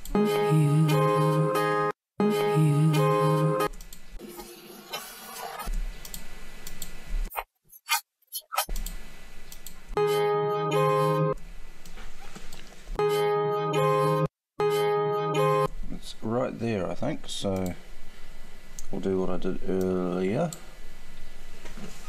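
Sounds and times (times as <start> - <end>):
strummed guitar chords: 10.0 - 11.4, 13.0 - 15.7.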